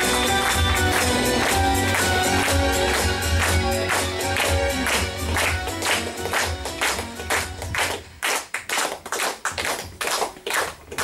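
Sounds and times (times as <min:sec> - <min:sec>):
music: 0:00.0 - 0:08.5
audience applause: 0:00.0 - 0:11.0.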